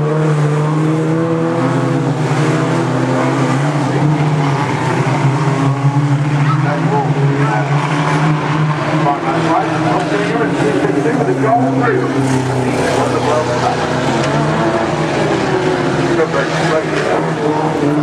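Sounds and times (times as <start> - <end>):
race car engines droning: 0.0 - 18.0.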